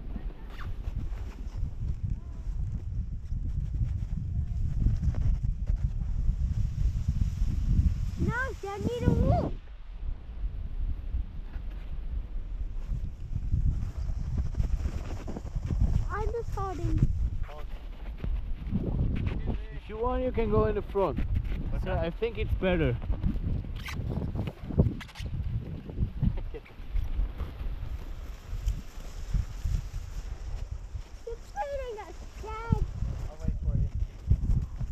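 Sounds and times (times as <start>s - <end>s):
sledge rumbling over snow: 0.0s - 34.9s
wind on microphone: 0.0s - 34.9s
sledge runners scraping on snow: 12.8s - 19.3s, 26.9s - 34.9s.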